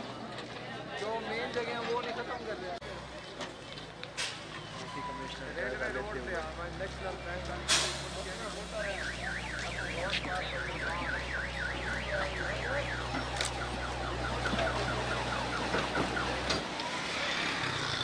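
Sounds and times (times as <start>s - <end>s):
diesel engine rumble: 2.7s - 18.0s
warbling electronic siren: 8.8s - 17.6s.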